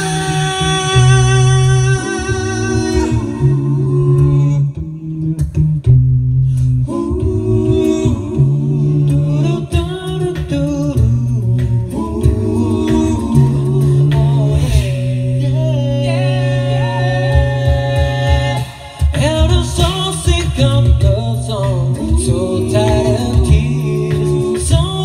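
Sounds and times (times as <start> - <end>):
a cappella group singing in harmony: 0.0 - 25.0
percussive vocal strokes: 0.0 - 25.0.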